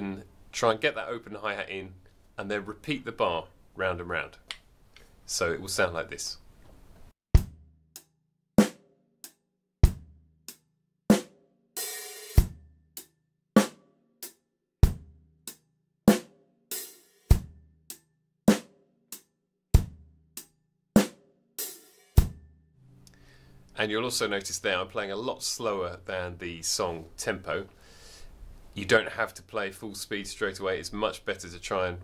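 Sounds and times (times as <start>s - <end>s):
bass drum: 7.3s - 7.8s, 9.8s - 10.2s, 14.8s - 15.2s, 19.8s - 20.1s, 22.2s - 22.4s
open hi-hat ringing hiss: 22.8s - 32.0s.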